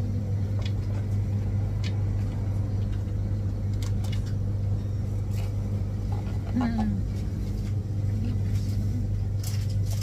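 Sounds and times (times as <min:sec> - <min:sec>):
low machine hum: 0:00.0 - 0:10.0.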